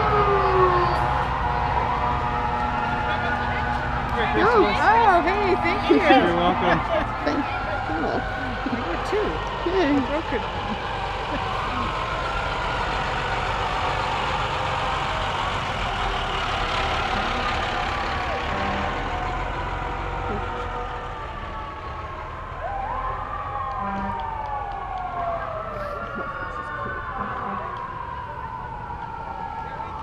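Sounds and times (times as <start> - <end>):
fire engine siren wailing: 0.0 - 30.0
truck engine rumbling: 0.0 - 30.0.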